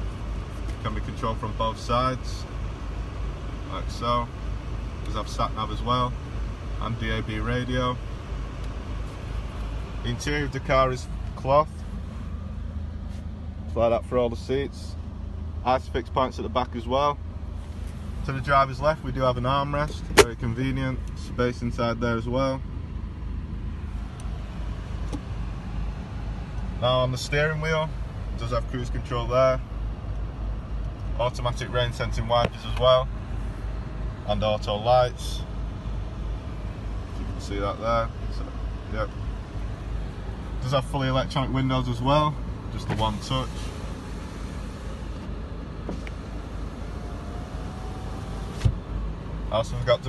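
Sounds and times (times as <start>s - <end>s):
diesel engine idling: 0.0s - 50.0s
low steady rumble: 0.0s - 50.0s.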